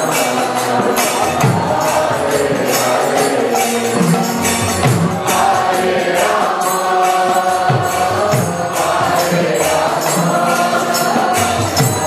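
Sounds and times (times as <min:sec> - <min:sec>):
hand cymbals striking: 0:00.0 - 0:12.0
voices chanting together: 0:00.0 - 0:12.0.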